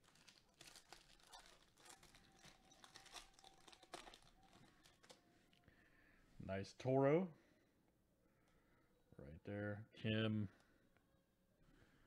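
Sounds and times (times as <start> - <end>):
foil wrapper crinkling and tearing: 0.0 - 5.2.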